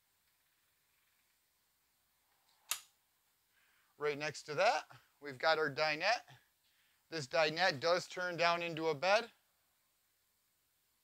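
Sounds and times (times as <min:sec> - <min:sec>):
sharp click: 0:02.7 - 0:02.9.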